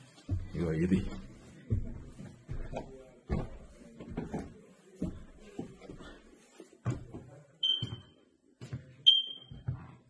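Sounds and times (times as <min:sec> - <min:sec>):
footsteps on wooden floor: 0:00.0 - 0:10.0.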